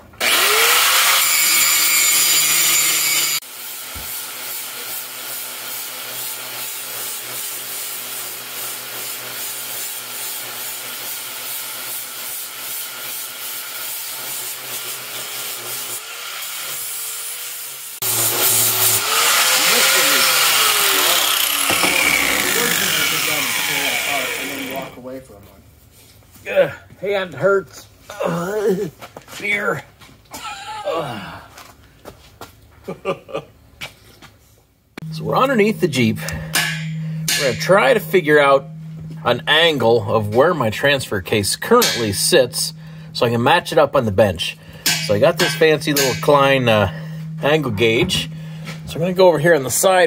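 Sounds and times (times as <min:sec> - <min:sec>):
angle grinder grinding steel: 0:00.2 - 0:25.0, 0:35.0 - 0:50.0.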